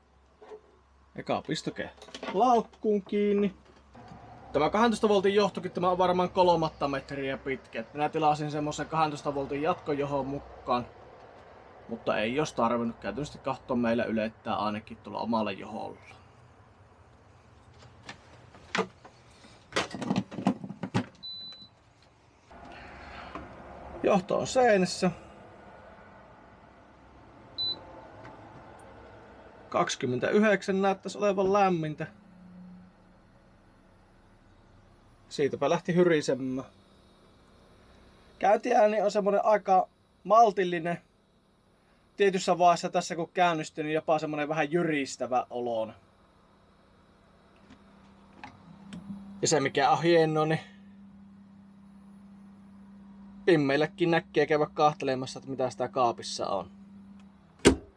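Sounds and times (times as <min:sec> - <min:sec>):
compressor low hum: 0:00.0 - 0:57.9.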